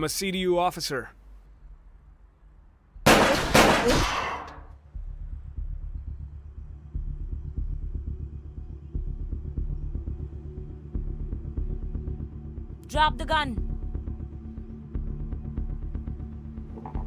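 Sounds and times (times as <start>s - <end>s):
pulsing suspense music: 4.6s - 17.0s.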